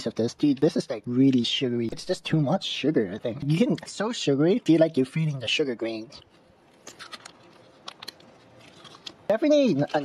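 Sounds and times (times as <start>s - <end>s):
chewing and mouth clicks: 6.2s - 10.0s.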